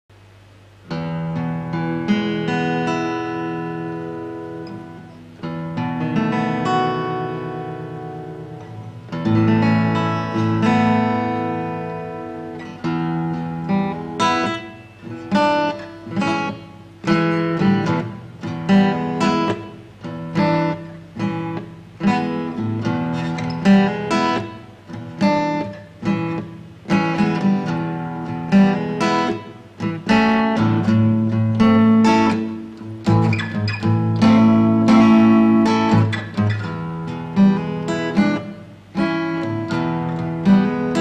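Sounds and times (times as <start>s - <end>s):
acoustic guitar strumming: 0.8s - 41.0s.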